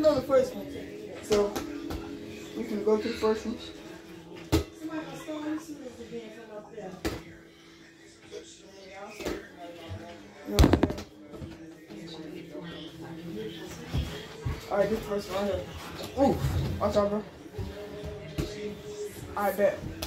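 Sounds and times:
rubber ball bouncing thuds: 10.6s - 11.1s.

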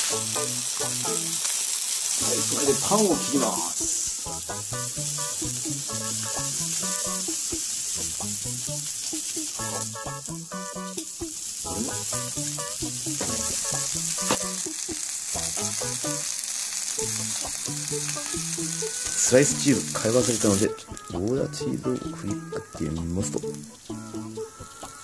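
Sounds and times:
melody of sustained notes: 0.0s - 1.5s, 2.2s - 24.8s
food sizzling on hot plate: 0.0s - 25.0s.

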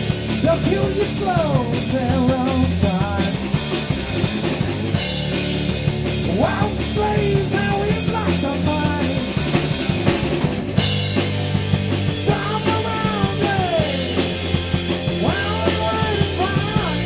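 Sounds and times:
bass guitar: 0.0s - 17.0s
drum kit: 0.0s - 17.0s.

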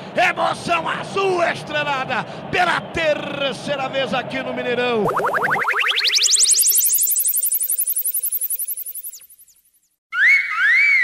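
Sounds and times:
rapid pulses rising in pitch: 5.0s - 10.0s
short falling chirps: 5.1s - 9.8s.

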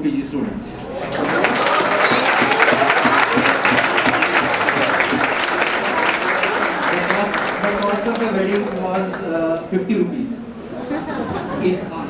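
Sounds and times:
audience clapping: 1.0s - 9.7s.

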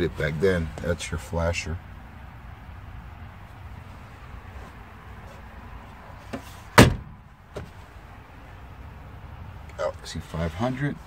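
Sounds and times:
sharp knock: 6.8s - 7.7s.

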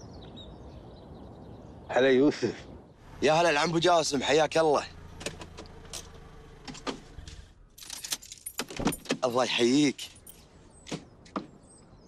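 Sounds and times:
car low hum: 2.8s - 9.4s
small jingling clicks: 5.2s - 11.4s.

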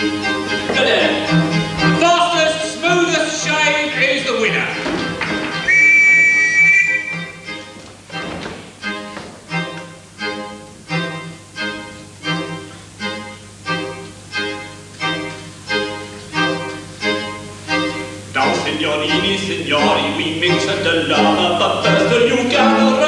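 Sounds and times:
theatre band with violin and strings: 0.0s - 23.0s.

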